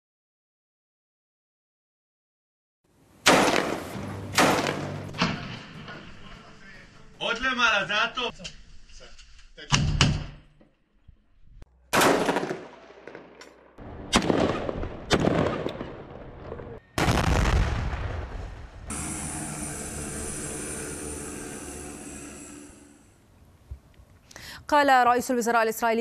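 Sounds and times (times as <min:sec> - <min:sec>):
gunshots with long echo: 0:03.2 - 0:05.0, 0:11.9 - 0:16.4
drone hovering hum: 0:18.9 - 0:23.3.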